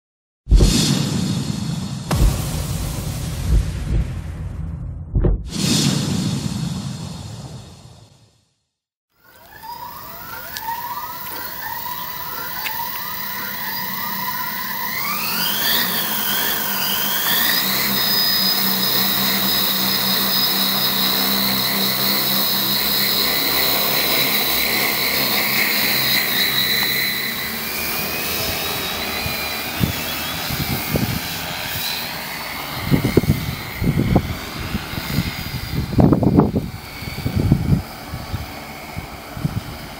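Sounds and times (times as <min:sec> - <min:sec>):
whoosh sound effect: 0:00.5 - 0:08.3
drone motors whining: 0:09.2 - 0:39.9.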